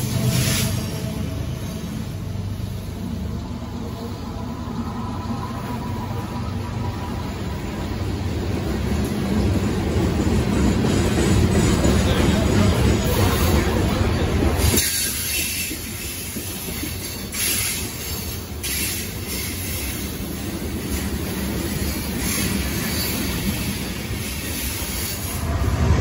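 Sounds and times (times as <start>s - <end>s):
diesel locomotives rumbling past: 0.0s - 26.0s.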